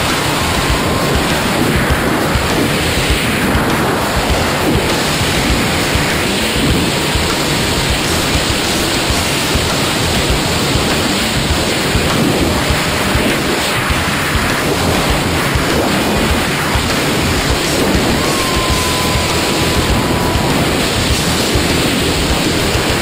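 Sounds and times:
wind buffeting camera microphone: 0:00.0 - 0:23.0.

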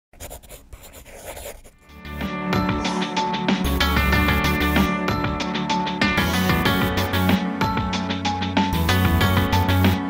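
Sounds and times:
scratchy scribbling sound effect: 0:00.1 - 0:01.9, 0:02.8 - 0:04.9, 0:06.2 - 0:07.3, 0:08.8 - 0:10.0.

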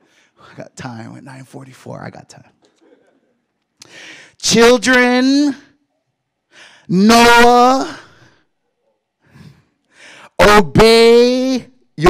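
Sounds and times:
man speaking: 0:00.4 - 0:02.6, 0:04.4 - 0:05.8, 0:06.9 - 0:08.2, 0:10.4 - 0:11.7
man breathing into microphone: 0:09.2 - 0:10.4.

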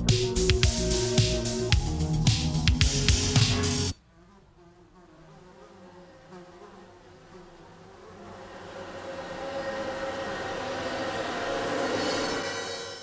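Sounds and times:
low buzzing drone: 0:06.8 - 0:13.0.

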